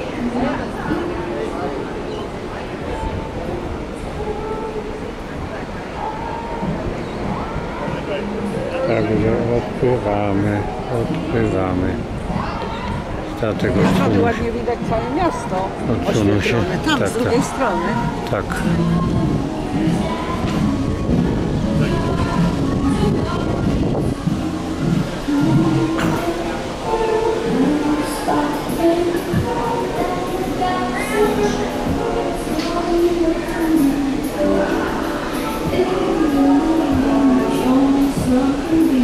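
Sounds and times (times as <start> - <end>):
faint music: 0.0 - 39.0
faint voices talking: 0.0 - 39.0
ship low rumble: 0.0 - 39.0.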